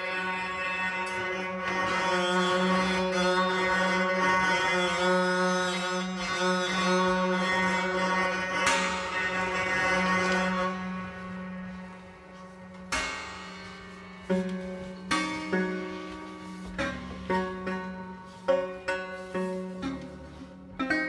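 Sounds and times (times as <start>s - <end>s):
bowed piano strings drone: 0.0s - 21.0s.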